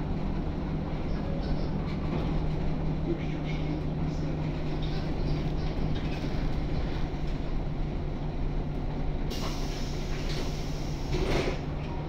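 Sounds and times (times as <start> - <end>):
bus engine drone: 0.0 - 12.0
compressed air hiss: 9.3 - 11.2.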